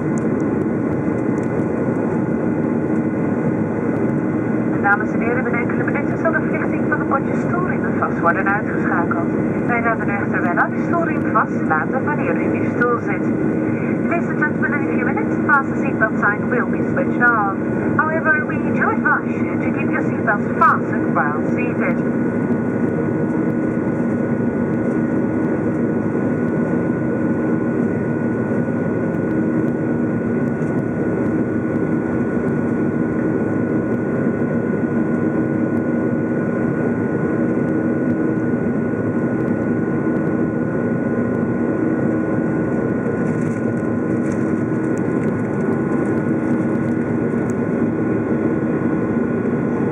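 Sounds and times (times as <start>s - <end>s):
airplane cabin engine rush: 0.0s - 49.9s
steady hum tones: 0.0s - 49.9s.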